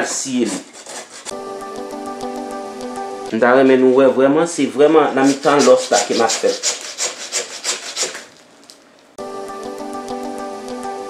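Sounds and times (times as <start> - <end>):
hacksaw cutting bone: 0.2 - 1.4, 5.2 - 8.3
background music with held notes: 1.3 - 5.0, 9.2 - 11.0.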